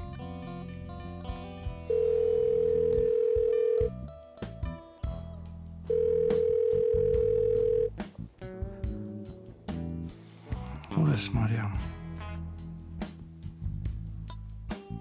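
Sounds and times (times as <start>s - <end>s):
soft background music: 0.0s - 15.0s
telephone ringback tone: 1.9s - 3.9s, 5.9s - 7.9s.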